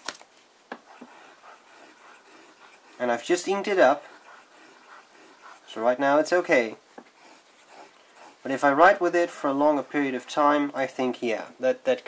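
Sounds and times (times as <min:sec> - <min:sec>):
fountain pen scratching on paper: 0:00.8 - 0:10.4.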